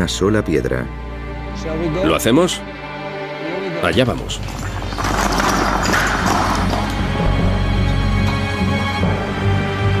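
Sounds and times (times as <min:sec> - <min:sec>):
dramatic music: 0:00.2 - 0:10.0
stone blocks crashing and clattering: 0:04.3 - 0:07.6.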